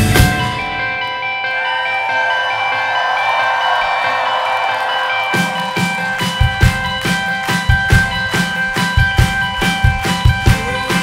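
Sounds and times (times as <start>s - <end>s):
electric guitars ringing held notes: 0.0s - 11.0s.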